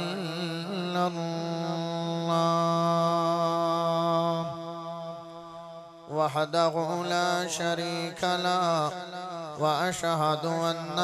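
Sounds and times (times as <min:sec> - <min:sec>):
man chanting religious recitation: 0:00.0 - 0:11.0.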